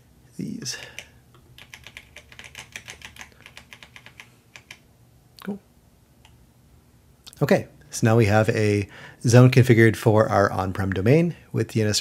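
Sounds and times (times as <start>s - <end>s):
computer keyboard typing: 0.9s - 4.8s.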